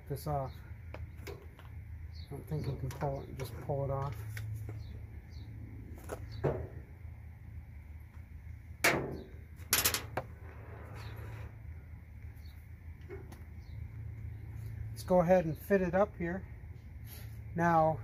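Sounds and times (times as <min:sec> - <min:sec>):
steady low hum: 0:00.0 - 0:18.0
metal parts clunking on cart: 0:08.9 - 0:10.3.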